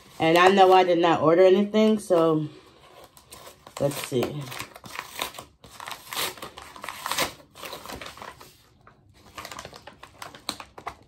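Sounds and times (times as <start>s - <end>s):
paper envelope tearing: 3.0s - 11.0s.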